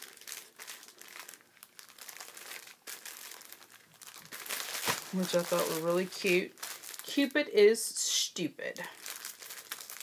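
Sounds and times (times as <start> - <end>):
paper packaging crinkling: 0.0 - 7.5, 8.8 - 10.0.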